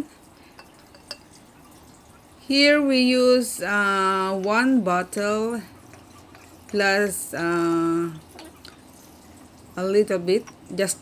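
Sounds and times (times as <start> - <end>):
liquid trickling into a glass jar: 0.0 - 11.0.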